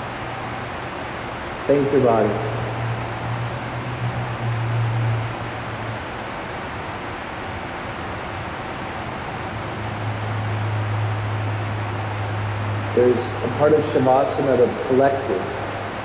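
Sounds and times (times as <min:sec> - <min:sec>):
low hum: 0:00.0 - 0:16.0
ventilation blower rushing: 0:00.0 - 0:16.0.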